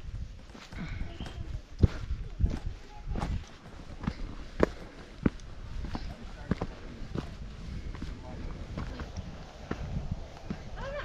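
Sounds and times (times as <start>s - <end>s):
footsteps on dirt trail: 0.0s - 11.0s.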